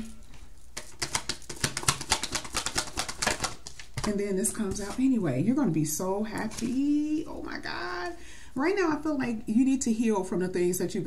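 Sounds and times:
cards being shuffled: 0:00.8 - 0:04.1.

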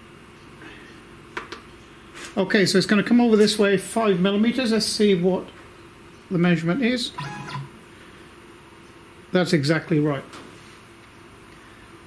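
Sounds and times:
stepper motor whine: 0:07.1 - 0:07.8.

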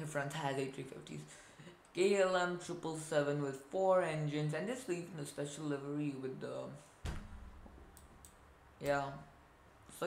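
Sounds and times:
low thud: 0:07.0 - 0:07.8
computer mouse clicks: 0:07.8 - 0:09.0.

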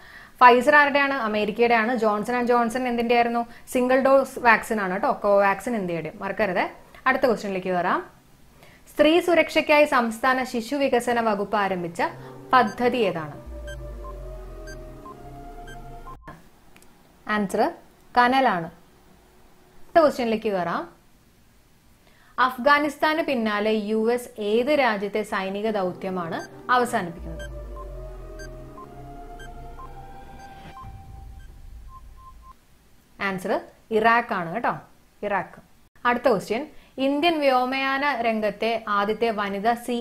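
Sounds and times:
low steady drone: 0:11.1 - 0:16.3, 0:25.5 - 0:32.5
low sustained drone: 0:11.4 - 0:16.2
electronic timer beeps: 0:12.1 - 0:16.4, 0:26.3 - 0:32.6.

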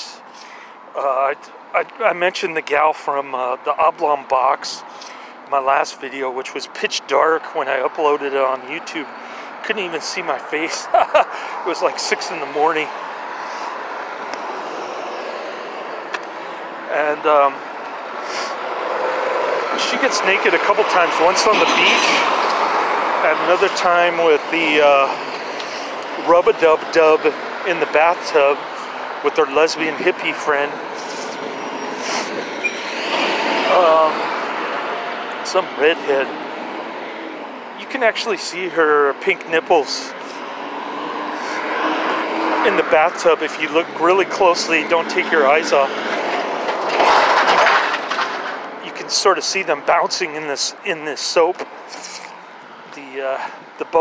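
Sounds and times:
passing vehicle rush: 0:07.6 - 0:54.0
short hiss: 0:51.9 - 0:52.3.

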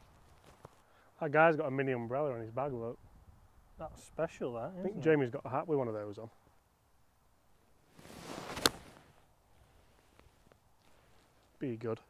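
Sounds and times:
golf club swishing: 0:07.9 - 0:09.2.

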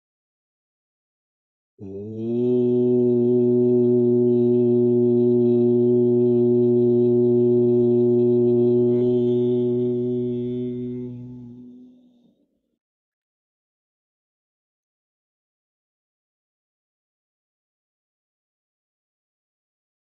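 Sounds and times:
man chanting a long note: 0:01.8 - 0:12.2.

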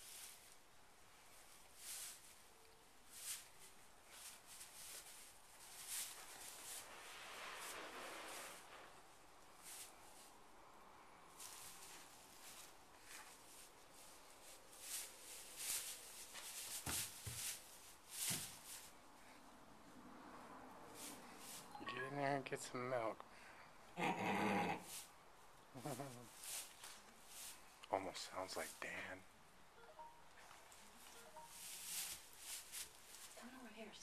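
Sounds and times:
straw bedding rustling: 0:00.0 - 0:10.6, 0:11.3 - 0:19.0, 0:20.9 - 0:21.7, 0:25.8 - 0:29.2, 0:30.6 - 0:34.0.

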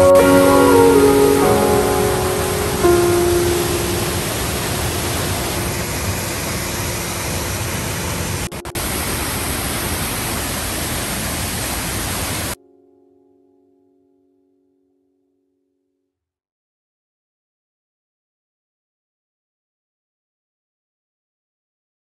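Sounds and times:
background music tones: 0:00.0 - 0:05.8, 0:12.6 - 0:16.0
waterfall roaring: 0:00.0 - 0:12.6.

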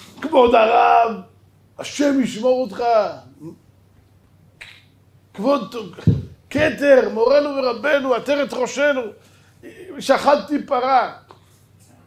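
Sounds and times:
man lecturing: 0:00.0 - 0:03.6, 0:05.3 - 0:11.3
sharp click: 0:04.6 - 0:04.9.

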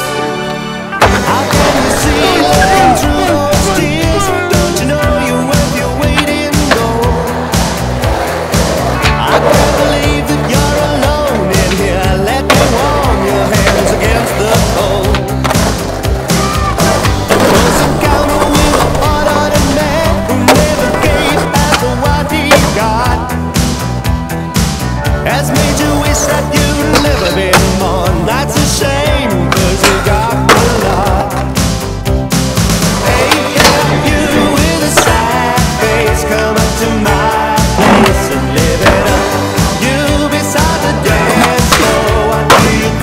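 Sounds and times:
loud music: 0:00.0 - 0:43.0
skateboard wheels rolling on concrete: 0:00.5 - 0:43.0
skateboard clack: 0:05.5 - 0:23.2, 0:25.5 - 0:28.8, 0:29.4 - 0:31.6, 0:32.8 - 0:35.8, 0:37.6 - 0:43.0.

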